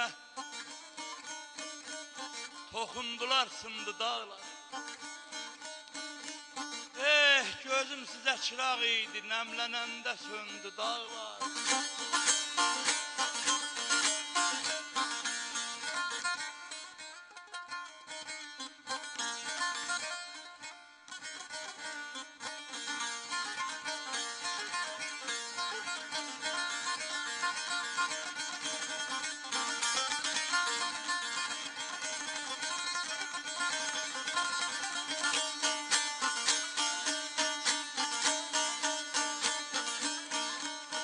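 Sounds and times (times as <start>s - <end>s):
plucked lute strumming: 0.4s - 41.0s.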